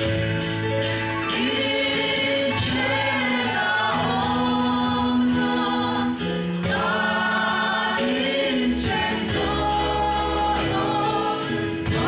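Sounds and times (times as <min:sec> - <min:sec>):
congregation singing a hymn: 0:01.2 - 0:12.0.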